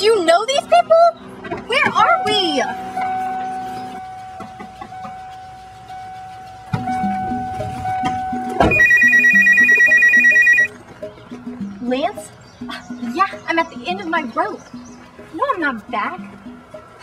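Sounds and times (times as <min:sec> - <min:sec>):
background music: 0:05.9 - 0:17.0
telephone ringing electronic trill: 0:08.7 - 0:10.7.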